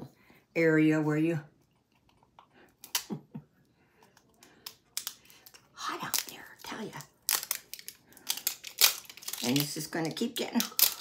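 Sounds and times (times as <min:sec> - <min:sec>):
plastic packaging crinkling: 0:05.0 - 0:11.0.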